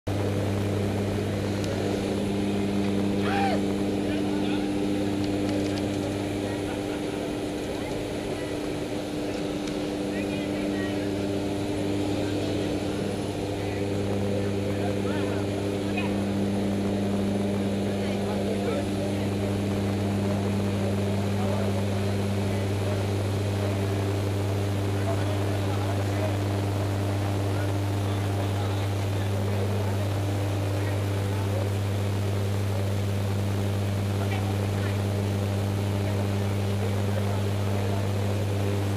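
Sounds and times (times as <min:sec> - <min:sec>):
propeller aircraft engines droning: 0:00.1 - 0:38.9.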